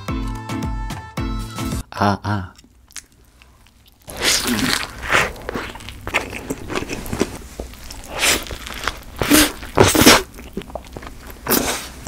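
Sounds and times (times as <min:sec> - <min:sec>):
closed-mouth chewing: 0:02.5 - 0:12.0
biting into a burger: 0:02.6 - 0:12.0.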